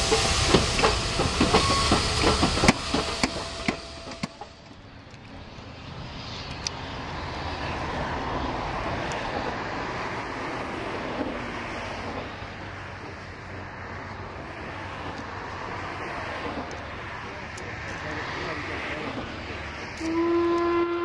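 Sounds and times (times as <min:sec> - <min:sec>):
train wheels clicking and knocking: 0:00.0 - 0:05.4, 0:11.0 - 0:20.6
steam hissing: 0:00.0 - 0:08.1
approaching steam train rushing: 0:00.0 - 0:21.0.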